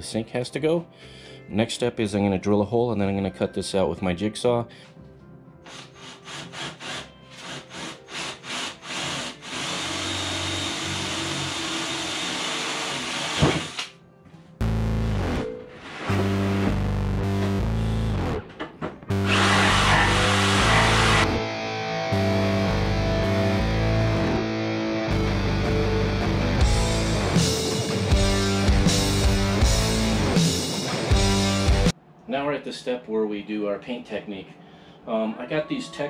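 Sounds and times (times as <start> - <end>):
cordless drill boring: 5.7 - 13.9, 19.2 - 21.4
rock music with heavy guitar: 16.1 - 31.9.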